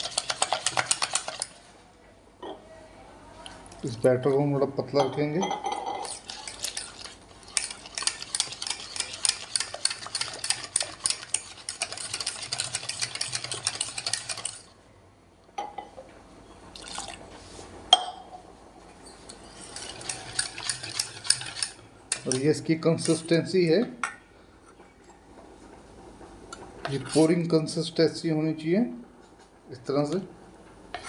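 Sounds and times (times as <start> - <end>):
wire whisk beating batter in bowl: 0.0 - 1.6, 5.9 - 14.7, 19.4 - 23.4.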